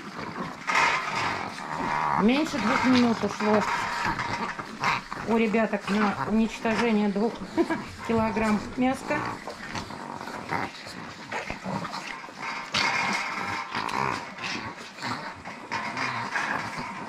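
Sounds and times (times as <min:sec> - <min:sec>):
small dogs growling: 0:00.0 - 0:17.0.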